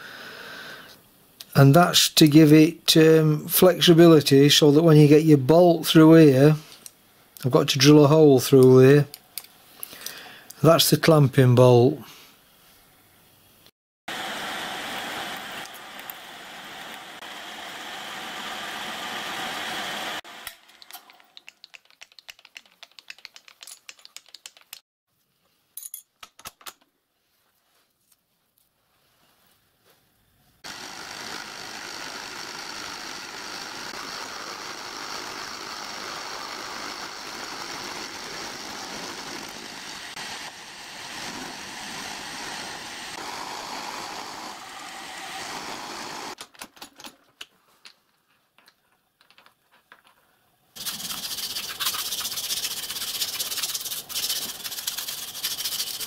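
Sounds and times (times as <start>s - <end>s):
end mill cutting metal: 30.7s - 46.4s
milling machine drilling steel: 30.7s - 46.4s.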